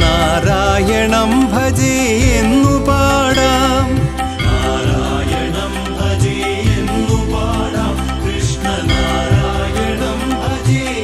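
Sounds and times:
chant-like devotional singing: 0.0s - 11.0s
tabla rhythm: 0.0s - 11.0s.

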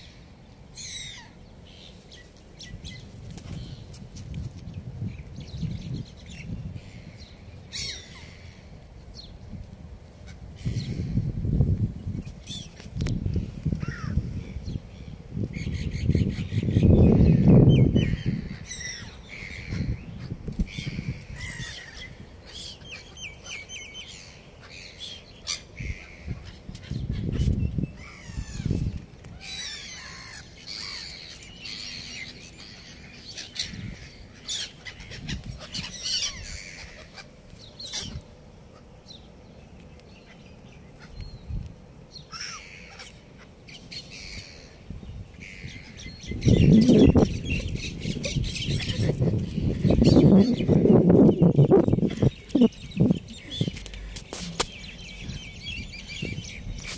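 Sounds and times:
gulls calling: 42.1s - 56.9s.

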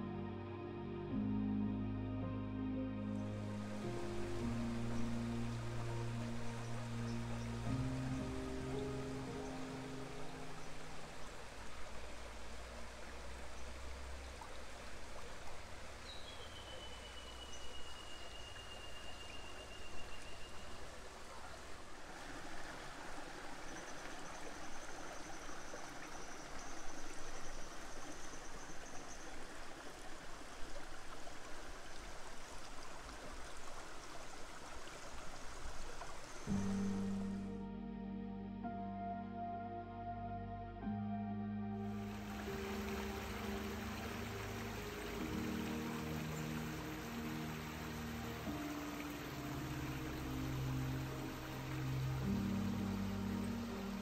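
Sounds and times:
soft instrumental music: 0.0s - 11.4s, 36.5s - 54.0s
creek running over rocks: 3.4s - 37.3s, 41.9s - 54.0s.

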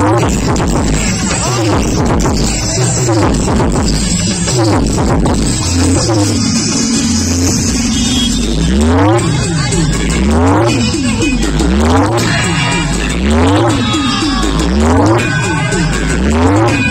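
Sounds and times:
loud electronic music: 0.0s - 16.9s.

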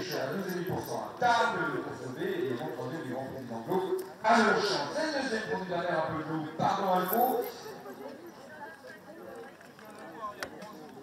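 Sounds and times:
faint voices chattering: 0.0s - 11.0s.

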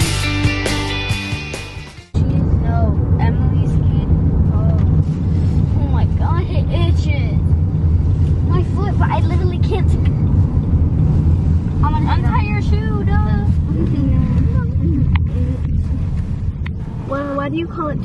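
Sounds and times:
road and engine rumble in car: 2.1s - 18.0s.

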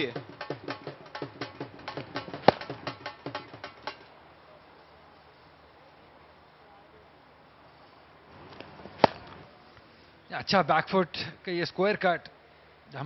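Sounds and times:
fast rhythmic drumbeats: 0.0s - 4.0s
faint ground ambience: 0.0s - 13.0s.

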